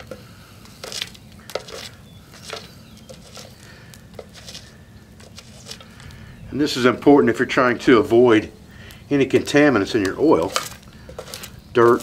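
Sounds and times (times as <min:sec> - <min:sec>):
stick scraping gravel and ash: 0:00.0 - 0:12.0
low steady rumble: 0:03.7 - 0:11.8.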